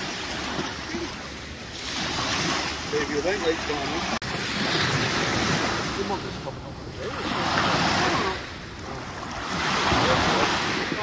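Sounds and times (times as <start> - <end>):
waves washing onto sandy beach: 0.0 - 11.0.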